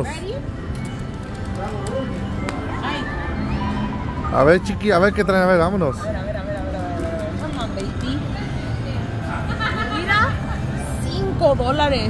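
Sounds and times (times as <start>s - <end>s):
casino background noise: 0.0s - 12.0s
slot machine electronic music: 0.6s - 6.2s.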